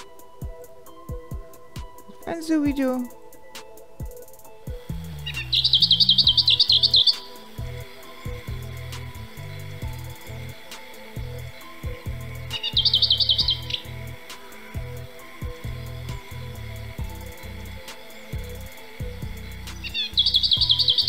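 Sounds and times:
songbird trilling: 5.0 - 21.0.

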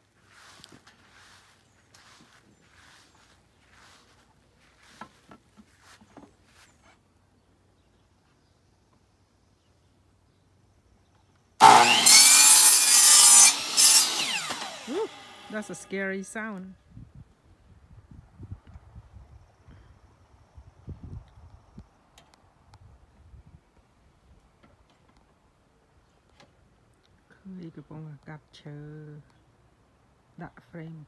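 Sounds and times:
miter saw cutting wood: 11.6 - 16.0.

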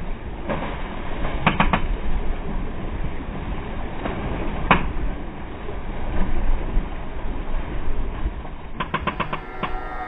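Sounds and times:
clicking percussion: 8.8 - 10.0
music track: 8.8 - 10.0
wind rushing: 8.8 - 10.0.

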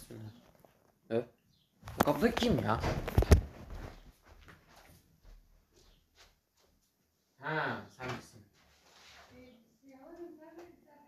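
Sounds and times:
rustling: 8.6 - 9.6.

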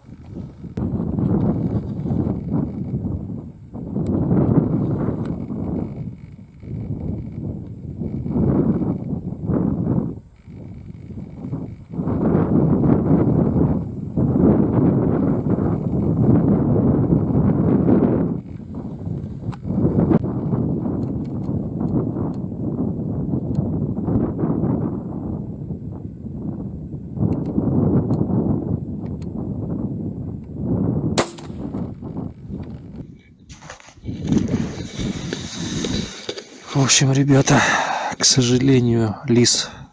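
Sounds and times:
rifle shot: 31.2 - 31.9.

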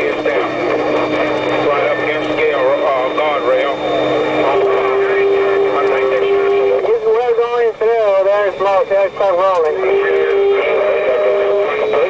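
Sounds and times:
radio chatter: 0.0 - 12.0
steady tone: 0.0 - 12.0
truck engine and road noise: 0.0 - 12.0.

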